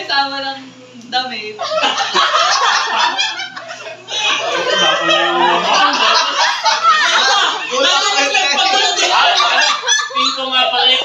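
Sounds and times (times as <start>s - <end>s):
group of adults laughing: 1.6s - 11.0s.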